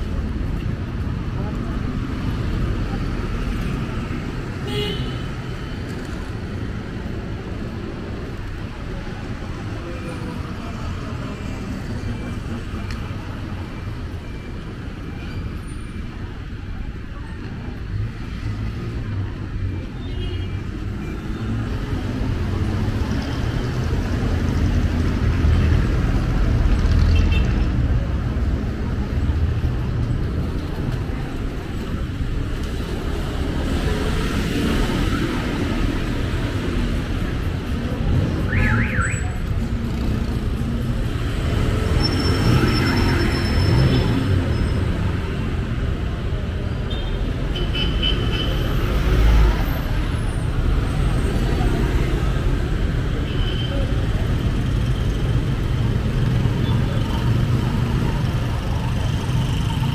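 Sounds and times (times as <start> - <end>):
cars and motorcycles passing: 20.6 - 59.9.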